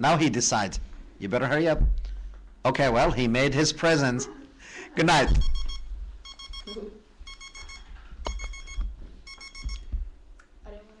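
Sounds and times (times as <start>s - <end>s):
electronic alarm beeping: 5.3s - 9.9s.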